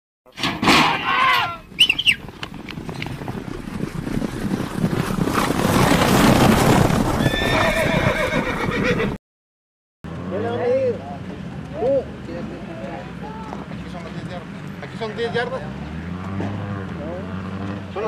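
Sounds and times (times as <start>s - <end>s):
horse whinnying: 0.8s - 2.3s, 5.3s - 9.2s
galloping hoofbeats: 1.5s - 9.2s.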